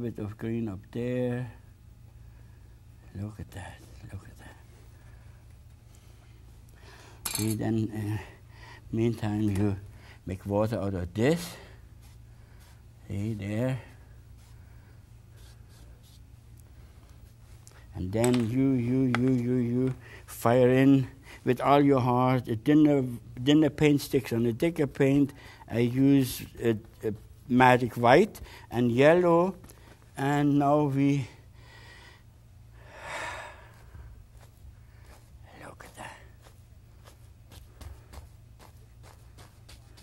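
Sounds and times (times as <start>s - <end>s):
steady low hum: 0.0s - 40.0s
brush strokes on canvas: 11.6s - 14.6s, 15.3s - 16.3s, 33.7s - 40.0s
man breathing out heavily: 31.4s - 34.2s.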